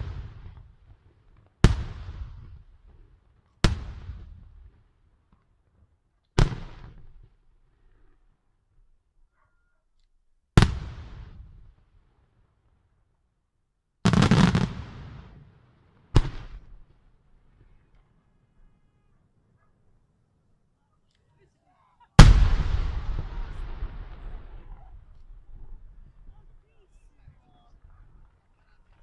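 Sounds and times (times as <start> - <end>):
rumbling echo: 22.2 - 25.6.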